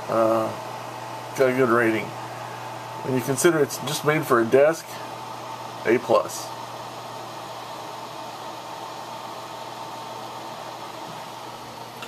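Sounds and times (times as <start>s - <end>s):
desk fan running: 0.0s - 12.0s.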